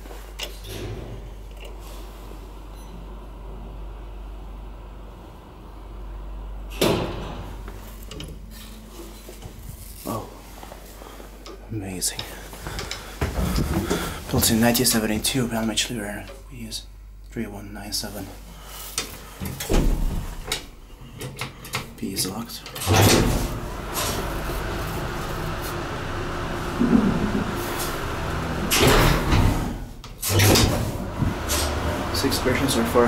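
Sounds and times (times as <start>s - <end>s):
elevator hum: 0.0s - 16.4s, 22.8s - 33.0s
elevator mechanical clunk: 22.8s - 31.9s.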